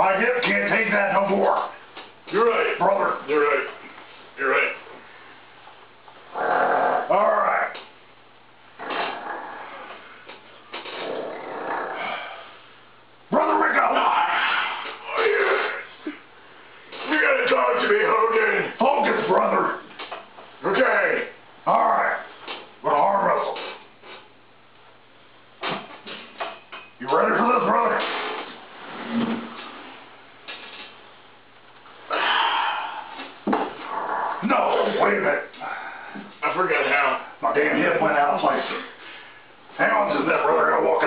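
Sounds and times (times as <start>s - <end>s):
furniture shifting: 28.0s - 31.0s.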